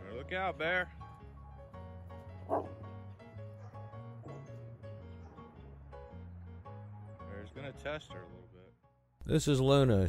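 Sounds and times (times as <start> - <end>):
background music: 0.0 - 10.0
wolf dog snarling: 2.5 - 2.8.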